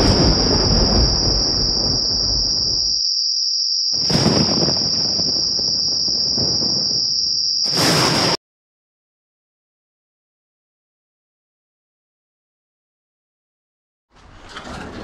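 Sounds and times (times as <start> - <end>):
deep rumbling: 0.0 - 3.0, 4.0 - 7.3
high-pitched insect-like trill: 0.0 - 8.0.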